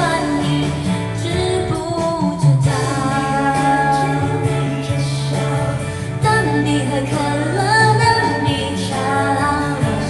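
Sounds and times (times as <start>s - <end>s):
backing track with guitar: 0.0s - 10.0s
woman singing pop song: 0.0s - 10.0s.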